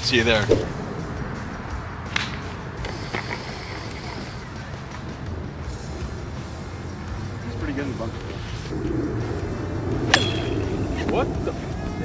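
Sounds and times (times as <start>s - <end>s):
background music: 0.0s - 12.0s
golf club striking ball: 2.1s - 2.9s, 10.0s - 10.8s.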